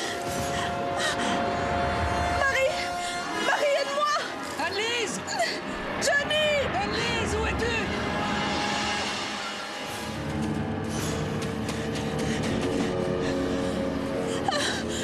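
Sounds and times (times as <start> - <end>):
dramatic orchestral film score: 0.0 - 15.0
woman gasping and whimpering: 12.1 - 15.0.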